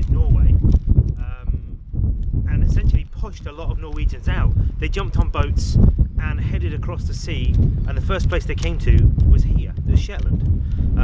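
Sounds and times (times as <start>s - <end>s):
man talking: 0.0s - 0.6s, 1.2s - 1.6s, 2.5s - 10.4s
wind rumbling on microphone: 0.0s - 11.0s.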